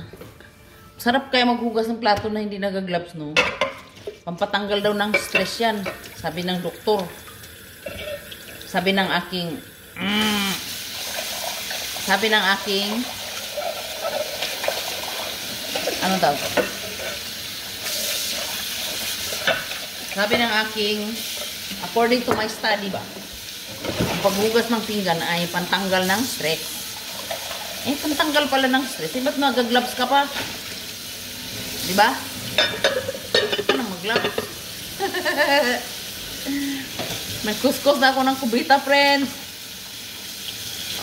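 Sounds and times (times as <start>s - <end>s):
running tap water: 3.6s - 41.0s
tap water running into sink: 5.1s - 9.1s, 10.7s - 24.8s.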